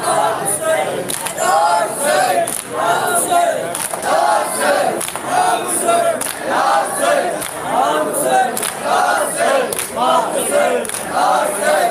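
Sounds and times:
men chanting in unison: 0.0 - 11.9.

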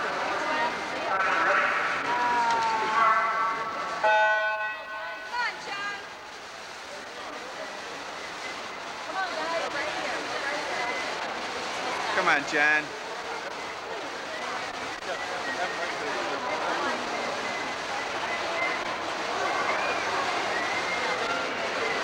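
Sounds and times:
spectators' voices: 0.0 - 22.0
voices echoing in pool: 0.0 - 22.0.

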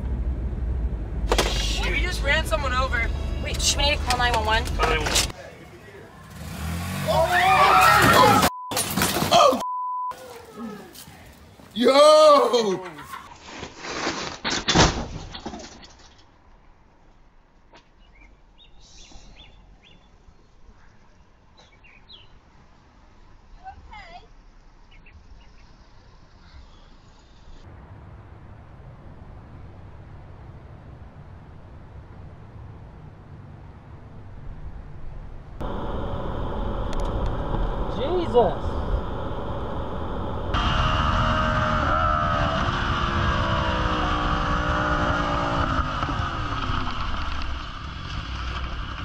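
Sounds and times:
car road and engine noise: 0.0 - 9.1, 19.3 - 49.0.

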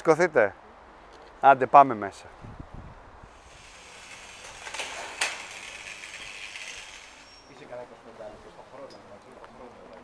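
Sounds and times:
hiss of movement: 3.3 - 7.5.

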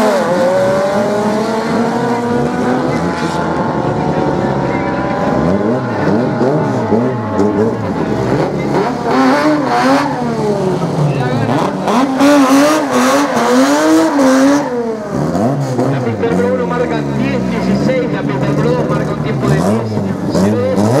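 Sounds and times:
racing car engines at full throttle: 0.0 - 21.0.

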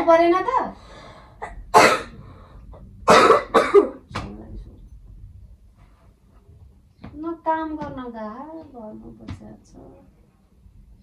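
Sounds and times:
person coughing: 1.4 - 2.2, 3.1 - 4.0.

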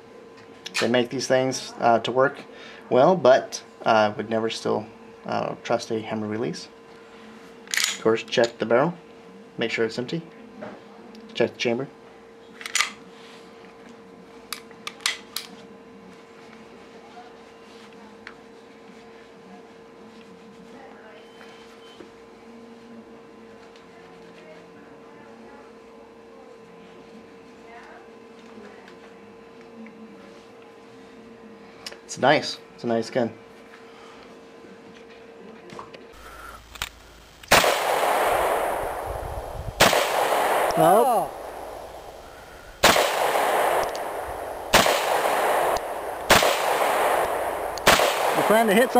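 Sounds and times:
pistol shot: 37.4 - 48.9
pistol slide clicking: 43.0 - 44.2.

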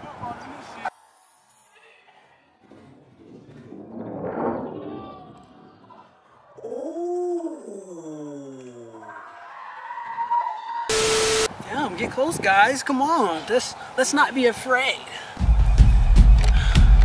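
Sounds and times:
steady high tone: 10.9 - 11.5
tv static burst: 10.9 - 11.5
noisy rush: 10.9 - 12.0.

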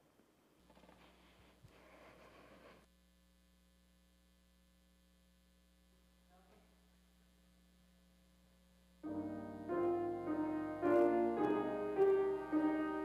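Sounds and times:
faint electrical mains hum: 0.0 - 13.0.

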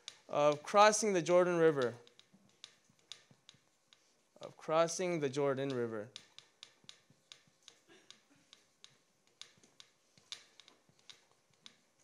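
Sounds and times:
marker tapping on a board: 0.0 - 12.0.

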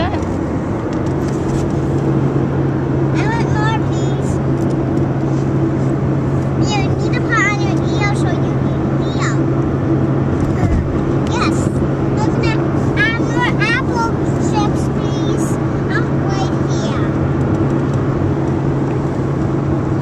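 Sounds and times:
car road and engine drone: 0.0 - 20.0.

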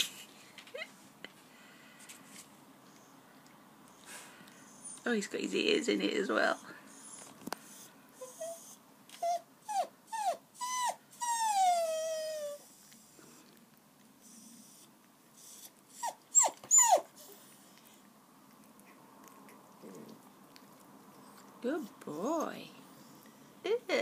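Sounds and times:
puppy whimpering and squeaking: 6.5 - 12.8, 14.3 - 17.5.

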